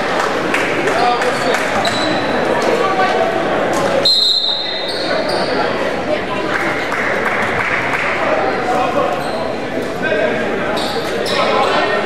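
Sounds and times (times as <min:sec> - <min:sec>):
crowd chatter echoing: 0:00.0 - 0:12.0.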